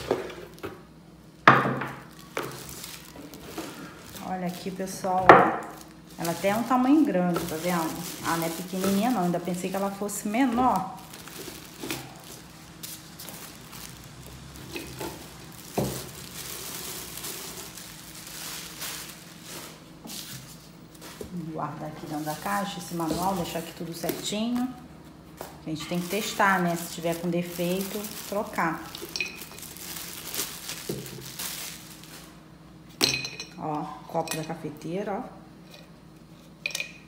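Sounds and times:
plastic bag crinkling: 0:01.8 - 0:24.9, 0:25.8 - 0:32.4.

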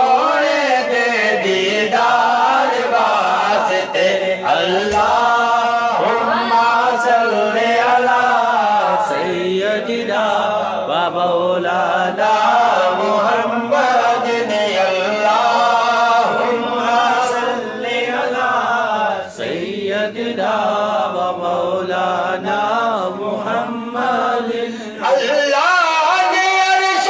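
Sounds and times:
man chanting melodically: 0:00.0 - 0:27.0.

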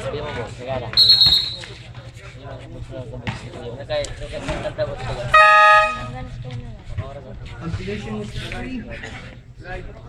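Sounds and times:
horn blast: 0:05.3 - 0:06.2.

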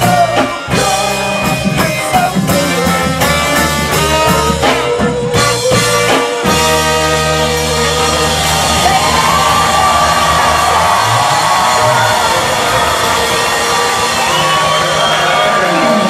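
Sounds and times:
ska band with horns: 0:00.0 - 0:16.0
audience cheering and whooping: 0:08.0 - 0:16.0.

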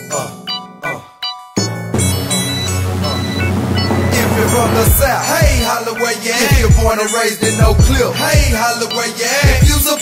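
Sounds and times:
vocals: 0:00.0 - 0:01.3, 0:02.2 - 0:10.0
hip hop beat: 0:00.0 - 0:10.0
sliding deep bass hits: 0:02.8 - 0:05.7.

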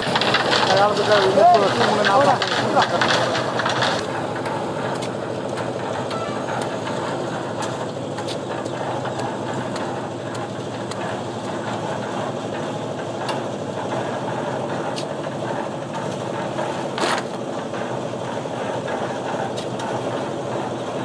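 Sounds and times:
concrete mixer running: 0:00.0 - 0:21.0.

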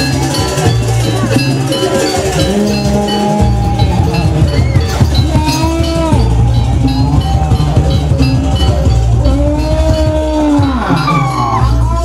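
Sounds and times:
drumming: 0:00.0 - 0:12.0
low held notes: 0:00.0 - 0:12.0
metallic bell-like strikes: 0:00.0 - 0:12.0.

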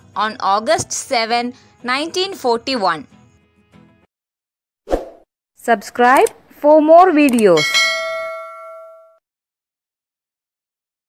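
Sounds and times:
bell ding sound effect: 0:07.6 - 0:09.2.

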